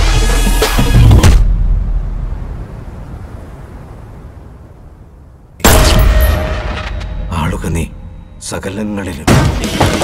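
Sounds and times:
music: 0.0s - 1.5s, 9.2s - 10.0s.

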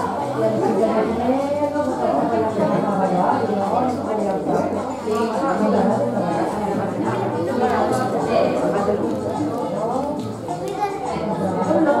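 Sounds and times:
chatter of children and adults: 0.0s - 12.0s.

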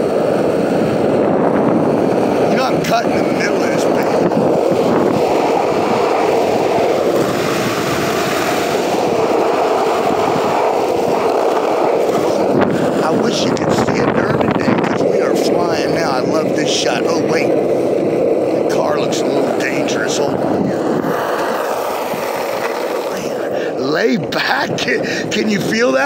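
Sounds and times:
skateboard wheels rolling on pavement: 0.0s - 26.0s
wind on microphone: 0.0s - 26.0s.

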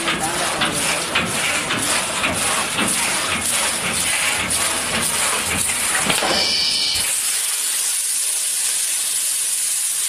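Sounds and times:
water spraying under pressure: 0.0s - 10.0s.

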